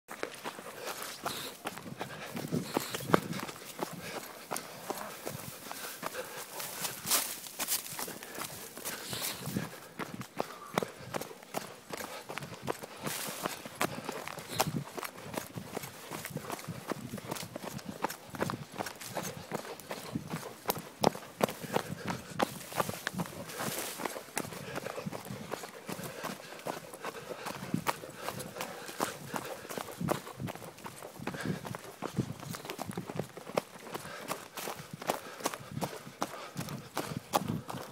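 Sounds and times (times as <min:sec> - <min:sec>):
people running on a trail: 0:00.1 - 0:37.9.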